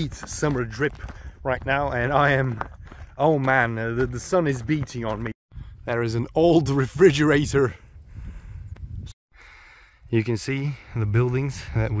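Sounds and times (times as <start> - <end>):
wind rumble on microphone: 0.0 - 9.2.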